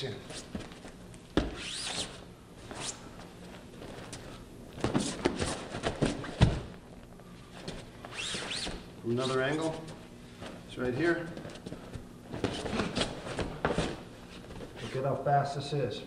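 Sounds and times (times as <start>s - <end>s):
shoes squeaking on a mat: 0.2s - 6.8s, 7.5s - 15.1s
feet thudding on a mat: 0.3s - 6.9s, 7.5s - 8.9s, 11.3s - 14.9s
body landing on a mat: 0.4s - 1.7s, 4.8s - 6.8s, 11.4s - 14.8s.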